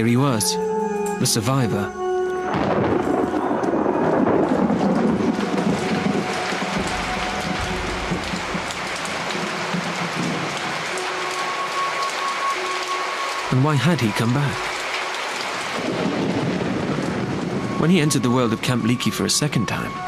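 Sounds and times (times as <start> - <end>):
rain falling steadily: 0.0 - 20.0
low rumble of thunder: 2.5 - 10.9, 15.4 - 20.0.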